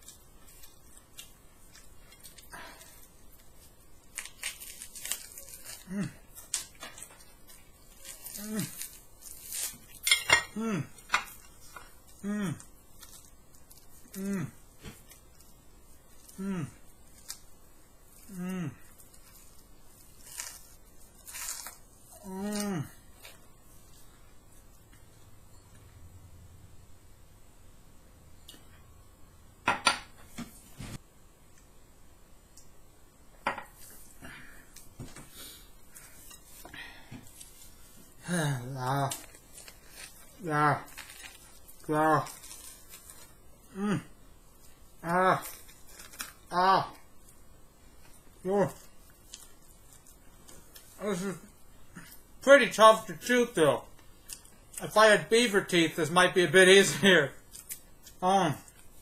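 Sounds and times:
crunching fried batter: 0.0 - 25.1, 35.9 - 59.0
man humming mmm: 5.8 - 6.2, 8.3 - 8.8, 10.6 - 11.0, 12.2 - 12.7, 14.1 - 14.6, 16.3 - 16.8, 18.2 - 19.0, 22.1 - 23.0, 38.2 - 39.4, 43.7 - 44.2, 51.0 - 51.5.

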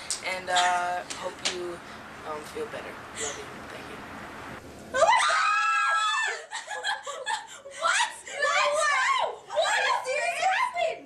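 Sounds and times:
girls screaming excitedly: 5.0 - 6.6, 7.8 - 11.0.

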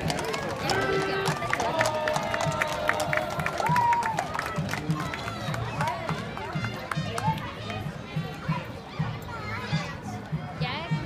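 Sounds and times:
horse hooves clopping on asphalt: 0.0 - 3.4.

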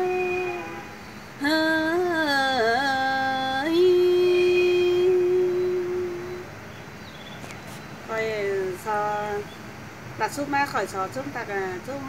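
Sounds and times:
woman singing a long note: 0.0 - 6.5.

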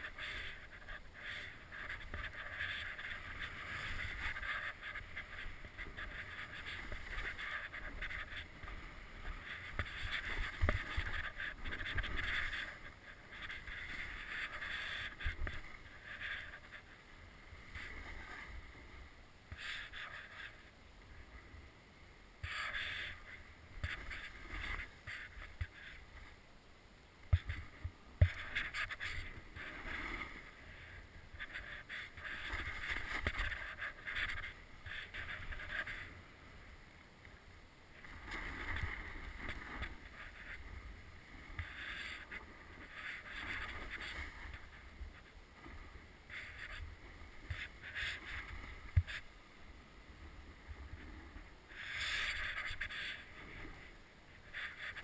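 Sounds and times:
snow hissing and scraping: 0.0 - 16.8, 51.1 - 55.0
wind rumbling on microphone: 0.0 - 16.9.

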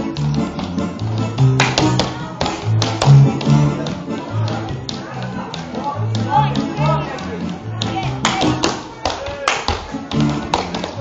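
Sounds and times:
dancer slaps and taps: 0.0 - 11.0
electronic keyboard dance music: 0.0 - 11.0.

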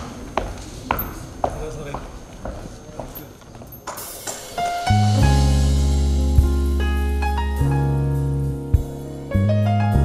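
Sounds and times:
footsteps on a stage: 0.0 - 4.8
low murmuring voices: 0.0 - 4.8.

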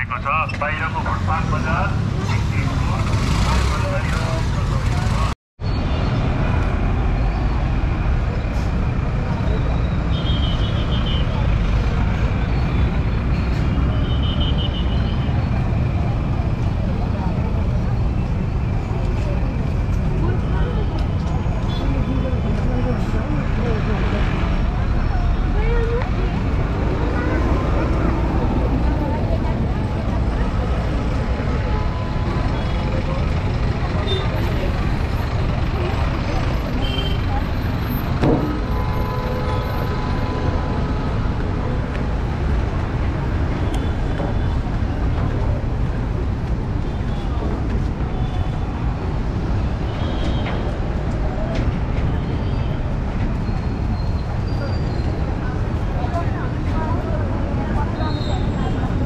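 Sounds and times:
road traffic: 0.0 - 59.0
voices of passers-by: 0.0 - 59.0.

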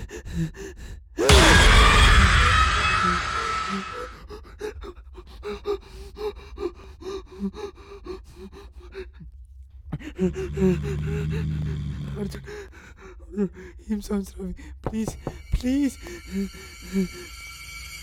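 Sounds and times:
person panting and gasping: 0.0 - 1.4, 4.0 - 9.3
person moaning: 10.0 - 12.7.

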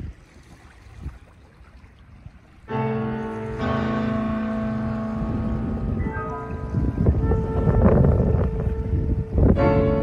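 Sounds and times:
small waves: 0.0 - 10.0
wind on microphone: 0.0 - 10.0.

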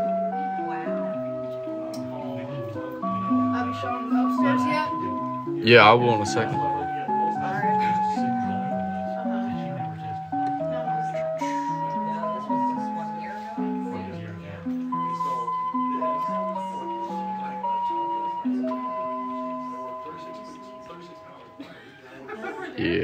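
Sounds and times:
musical clock electronic melody: 0.0 - 21.7.

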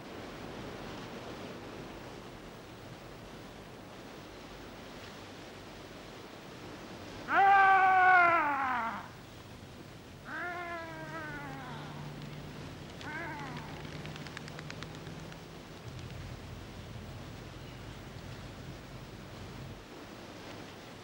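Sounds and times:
man shouting long falling cry: 7.3 - 9.2, 10.3 - 12.2, 13.0 - 13.8
faint clicks: 12.0 - 16.8.

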